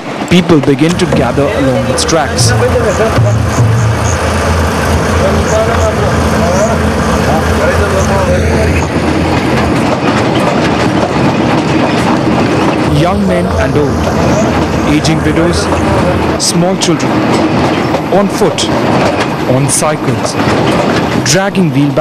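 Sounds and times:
people's voices: 0.3s - 10.4s, 12.8s - 18.8s, 19.4s - 20.5s.

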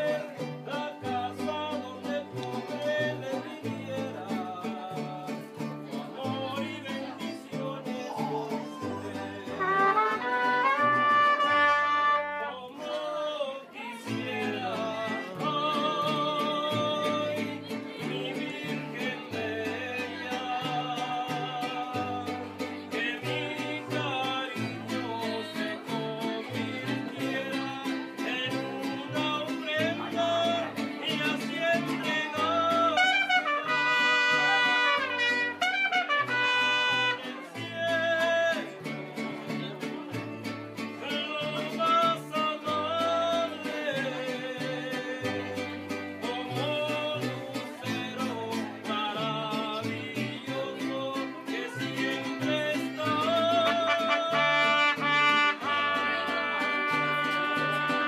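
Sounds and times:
person singing: 0.0s - 39.0s, 40.8s - 58.0s
strummed guitar: 0.0s - 58.0s
trumpet: 9.5s - 12.7s, 32.9s - 37.5s, 53.6s - 58.0s.

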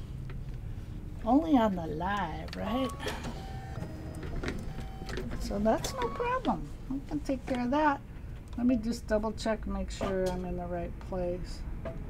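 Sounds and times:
embroidery machine whir: 2.1s - 6.6s.

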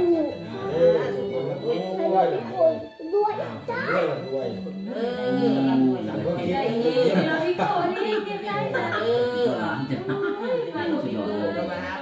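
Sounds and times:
background music: 0.0s - 12.0s
voices: 0.0s - 12.0s.

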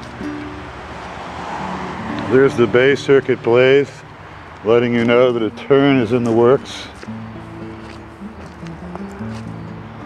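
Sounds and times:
car passing on paved road: 0.0s - 10.0s.

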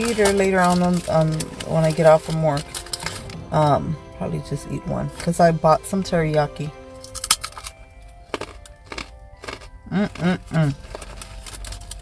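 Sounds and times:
carrot crunching while chewing: 0.0s - 3.5s, 7.0s - 12.0s
faint music: 0.0s - 12.0s
person humming mm: 9.9s - 10.8s.

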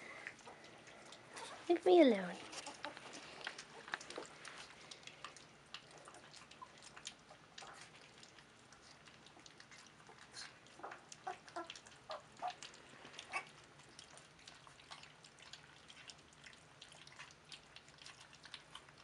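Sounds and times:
puppies lapping and chewing food: 0.0s - 19.0s.

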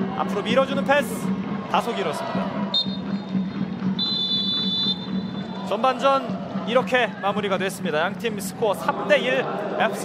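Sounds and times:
referee's whistle blast: 4.0s - 5.4s.

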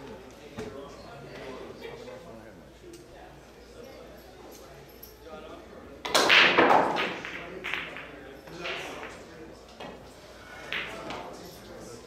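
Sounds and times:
pool cue striking ball: 6.1s - 10.0s, 10.7s - 11.4s.

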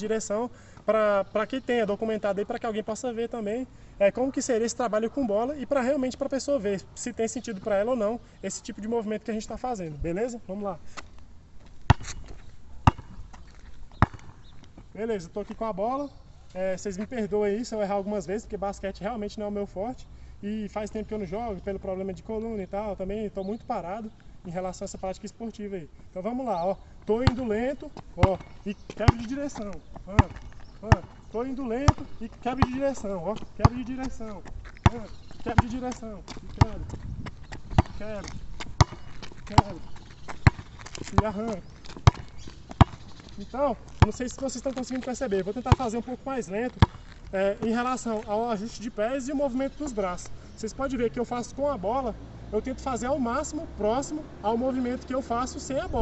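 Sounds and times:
basketball bouncing on pavement: 11.0s - 15.6s, 26.5s - 48.7s.

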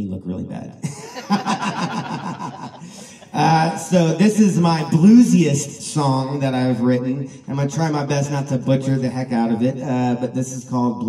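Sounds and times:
man laughing: 0.8s - 5.2s.

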